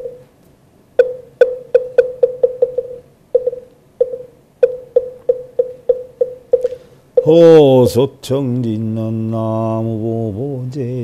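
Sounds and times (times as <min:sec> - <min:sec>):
mantra chanting: 0:07.2 - 0:11.0.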